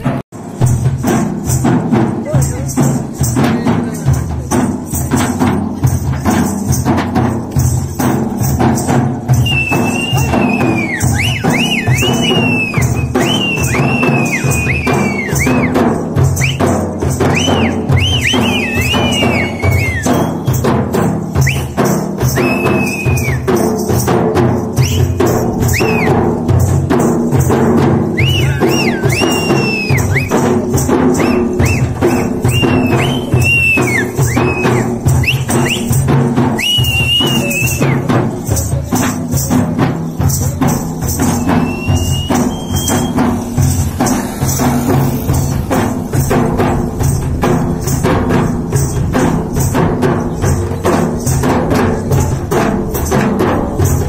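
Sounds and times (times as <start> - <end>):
dhol drums played with sticks: 0.0 - 54.0
high whistling tone: 9.3 - 23.7, 24.8 - 26.3, 28.1 - 38.3, 41.2 - 45.6.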